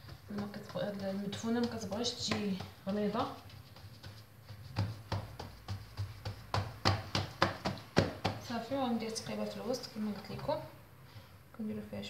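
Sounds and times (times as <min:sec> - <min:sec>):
hands slapping dough: 0:00.0 - 0:10.5.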